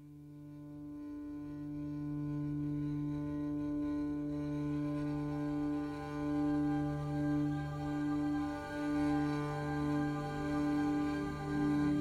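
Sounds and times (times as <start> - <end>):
background music with low held notes: 0.0 - 12.0.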